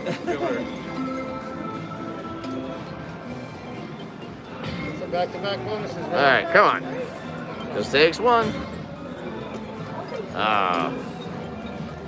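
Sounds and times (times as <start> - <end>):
electronic slot machine music: 0.0 - 8.3.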